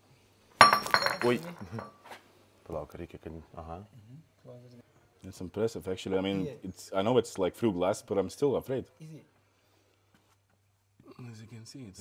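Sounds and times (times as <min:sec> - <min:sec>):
snake striking glass: 0:00.6 - 0:01.9.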